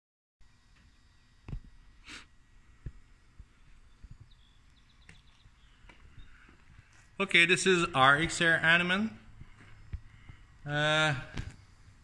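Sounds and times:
person breathing: 2.0 - 3.7, 9.2 - 10.7
faint high chirping: 3.5 - 6.9.

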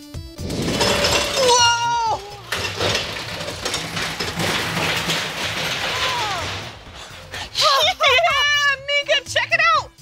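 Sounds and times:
mechanical rumble and rattle: 0.4 - 7.6.

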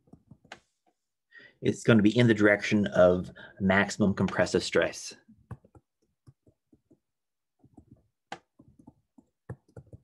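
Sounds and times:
stylus tapping on tablet screen: 5.4 - 10.0.

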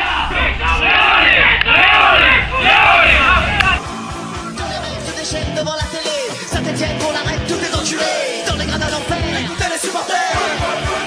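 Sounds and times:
boys shouting group chant: 0.0 - 3.8.

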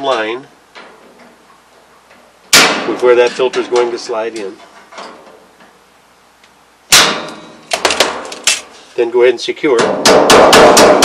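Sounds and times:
metal notcher snipping sheet metal: 6.9 - 8.7.

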